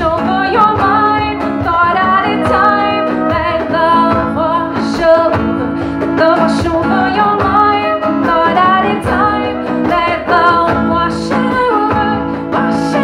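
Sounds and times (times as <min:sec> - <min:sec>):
person singing: 0:00.0 - 0:13.0
strummed acoustic guitar: 0:00.0 - 0:13.0.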